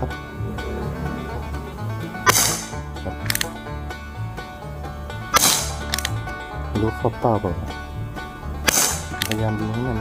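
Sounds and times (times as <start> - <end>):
background music: 0.0 - 10.0
air pistol shots: 2.2 - 3.6, 5.3 - 6.2, 8.6 - 9.4.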